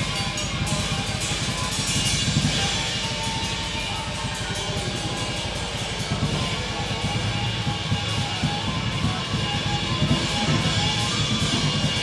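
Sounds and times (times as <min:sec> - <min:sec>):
drum kit with cymbals: 0:00.0 - 0:12.0
saxophone: 0:00.0 - 0:12.0.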